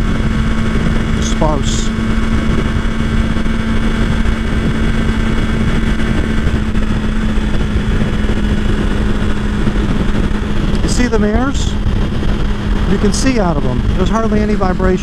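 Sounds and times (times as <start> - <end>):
motorcycle engine cruising: 0.0 - 15.0
wind and road noise: 0.0 - 15.0.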